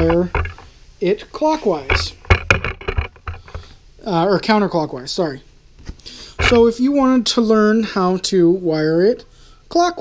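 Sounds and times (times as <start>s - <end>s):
short knocks and clicks: 0.0s - 0.7s, 1.8s - 3.7s.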